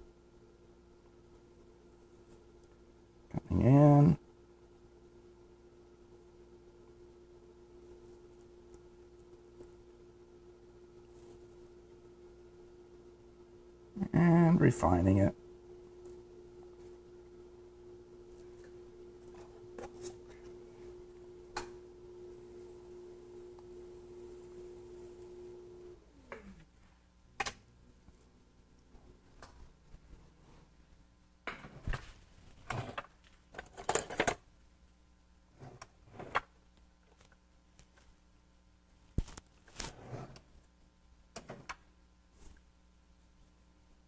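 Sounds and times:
potter's wheel motor hum: 0:00.0 - 0:26.5.

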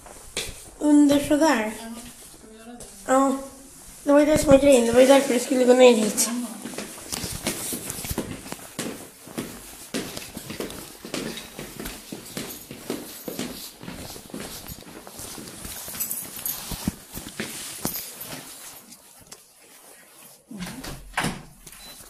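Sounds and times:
footsteps on stairs and hard floor: 0:00.0 - 0:19.2.

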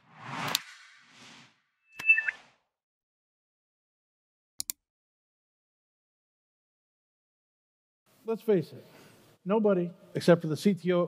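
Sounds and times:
two-note electronic chirp: 0:01.9 - 0:02.4.

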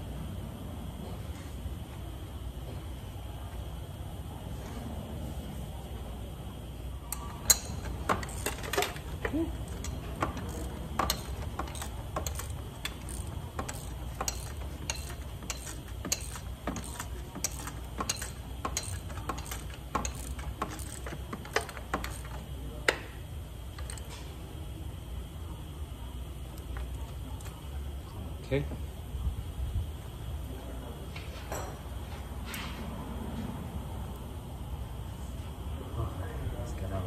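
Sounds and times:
steady low hum: 0:00.0 - 0:37.0
ratchet wrench clicking: 0:07.1 - 0:22.5, 0:23.8 - 0:24.1.

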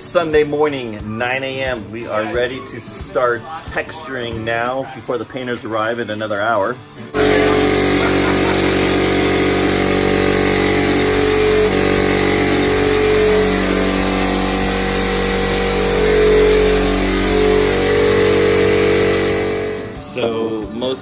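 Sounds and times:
air compressor droning: 0:07.2 - 0:20.2.

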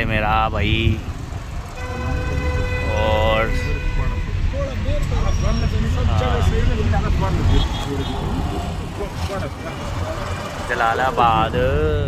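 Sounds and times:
people talking: 0:00.0 - 0:01.0, 0:02.0 - 0:12.0
car engine rumble: 0:00.0 - 0:12.0.

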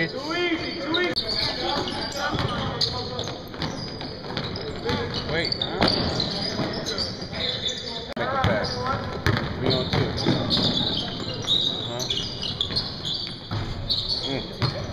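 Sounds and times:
players calling out: 0:00.0 - 0:14.9
basketball bouncing: 0:01.8 - 0:06.8, 0:08.4 - 0:14.9.

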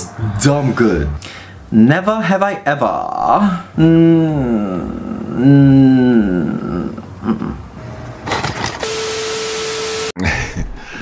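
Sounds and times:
glitch transition effect: 0:00.0 - 0:01.3
tv static hiss: 0:08.4 - 0:10.2.

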